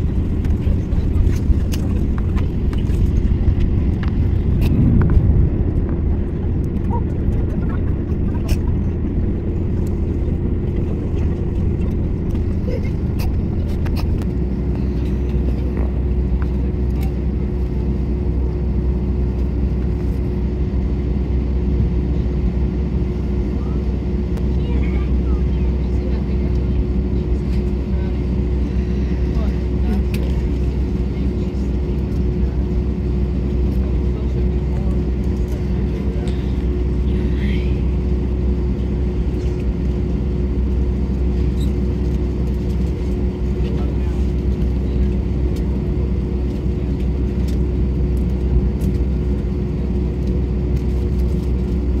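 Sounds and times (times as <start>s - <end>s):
jet engines rumbling in cabin: 0.0s - 52.0s.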